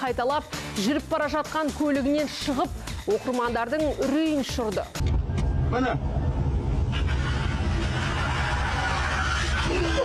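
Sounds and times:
rushing noise: 5.6s - 10.0s.

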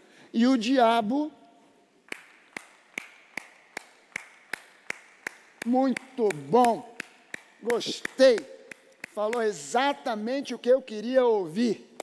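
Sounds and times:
man clapping slowly: 2.0s - 9.6s.

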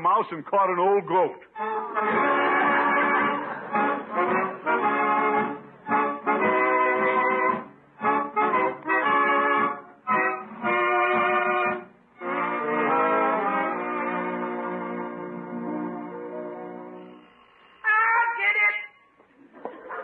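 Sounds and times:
brass held chords: 1.5s - 17.4s.

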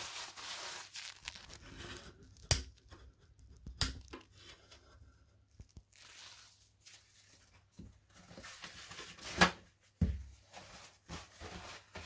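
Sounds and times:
rustling handling noise: 0.0s - 2.4s, 3.4s - 12.0s.

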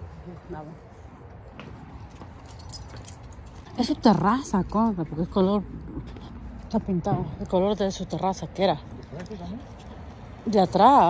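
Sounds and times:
light metallic jingling: 2.1s - 5.5s
metal clinks: 2.4s - 5.1s.

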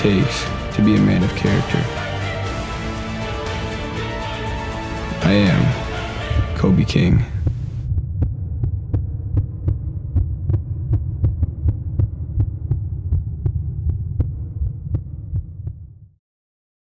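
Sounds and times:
low droning pulse: 0.0s - 16.2s.

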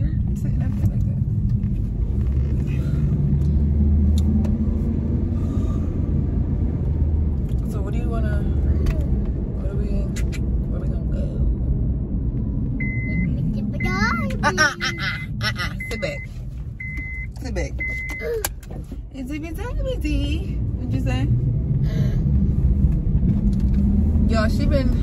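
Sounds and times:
car engine rumble and road noise: 0.0s - 25.0s.

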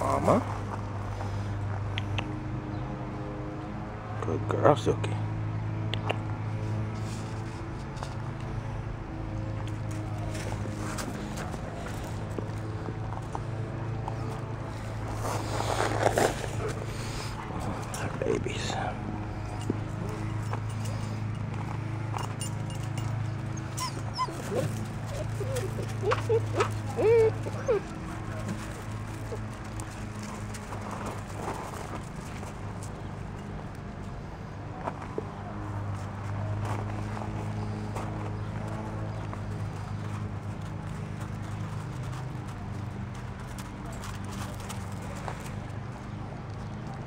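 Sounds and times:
footsteps on gravel: 9.7s - 34.0s, 34.8s - 47.0s
puppies whimpering: 23.4s - 30.1s
puppy high-pitched yips: 23.8s - 27.9s.

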